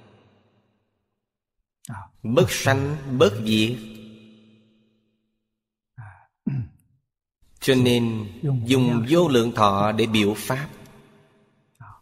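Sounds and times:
man speaking: 1.8 - 4.0, 7.6 - 10.8.

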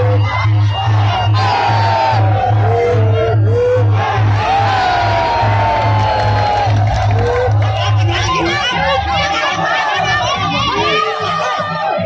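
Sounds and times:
crowd shouting and whooping: 0.0 - 12.0
pulsing drum beat: 0.0 - 12.0.

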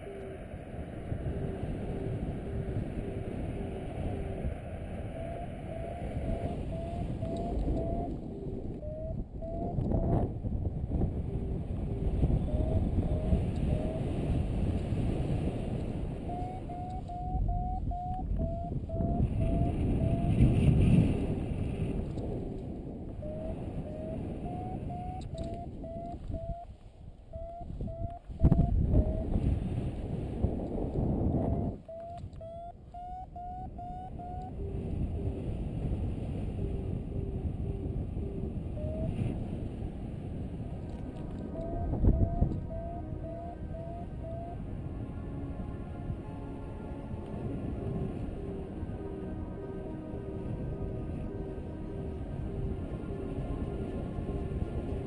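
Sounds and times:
wind rushing over microphone: 0.0 - 55.0
short rising beeps: 5.2 - 8.1, 8.8 - 10.1, 16.3 - 20.4, 23.2 - 26.7, 27.3 - 29.2, 41.5 - 44.6.

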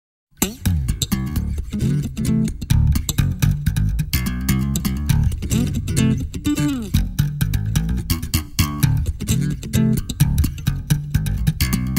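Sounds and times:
electric bass guitar riff: 0.4 - 11.9.

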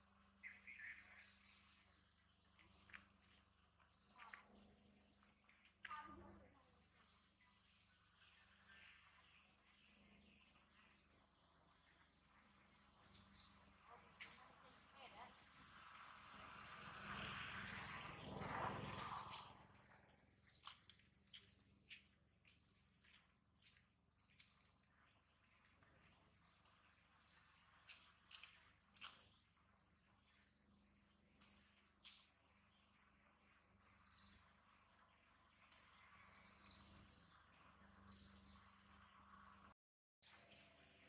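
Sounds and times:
small birds chirping: 0.0 - 41.0.

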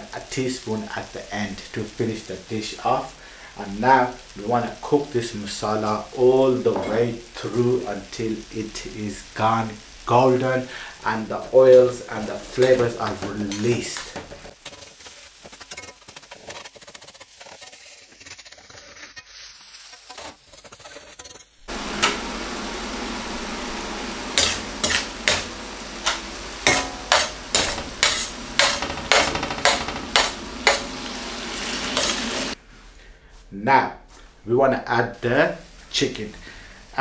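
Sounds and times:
masala sizzling in a steel pan: 0.0 - 32.8, 34.1 - 37.0
spoon scraping and knocking pan: 6.7 - 7.1, 11.4 - 18.8, 19.9 - 22.4, 24.3 - 32.6.

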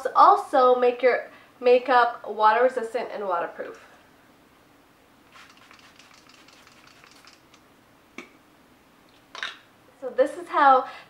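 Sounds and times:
spray misting hiss: 5.3 - 7.6.

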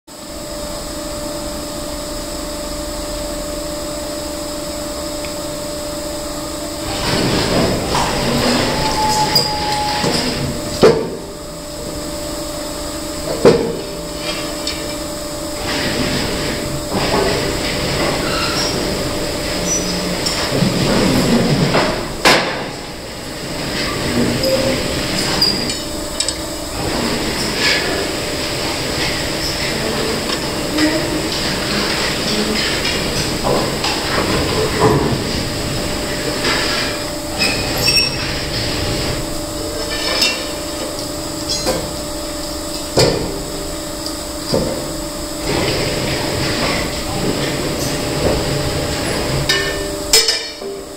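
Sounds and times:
hydraulic stone splitter running: 4.0 - 50.9.

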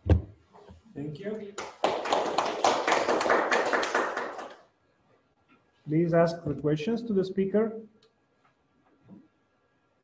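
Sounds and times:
audience applauding: 1.6 - 4.7.

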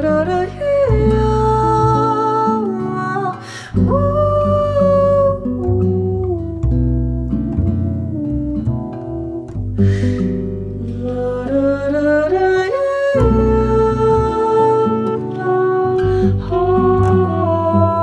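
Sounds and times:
woman singing wordless notes: 0.0 - 9.6, 10.8 - 18.0
acoustic guitar: 0.0 - 18.0
plucked double bass: 0.0 - 18.0.

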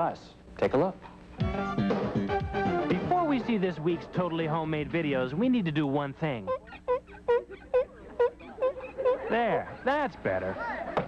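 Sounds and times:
cloth squeaking on lens glass: 6.4 - 9.6.

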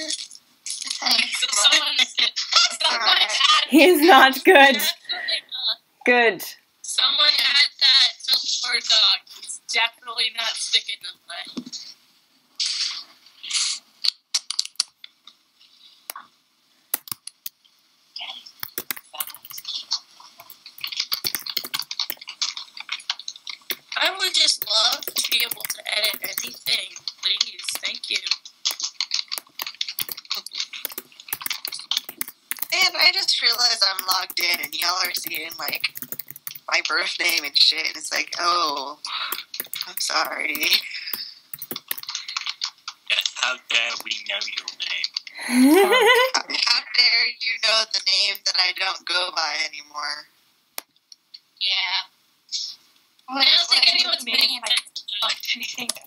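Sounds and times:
computer keyboard keys clicking: 17.0 - 17.5, 18.6 - 19.7, 20.4 - 22.2, 24.6 - 26.8, 28.7 - 37.6, 39.3 - 40.9, 41.5 - 42.2.

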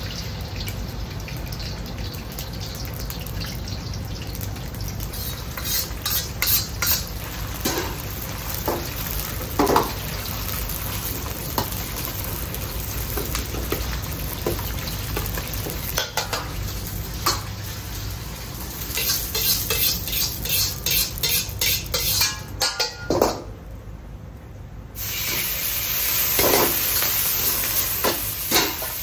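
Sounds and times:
egg sizzling in hot oil: 0.0 - 22.9, 25.0 - 29.0
gas burner rumble: 4.0 - 29.0
metal ladle scraping wok: 5.2 - 8.0, 18.9 - 23.1.

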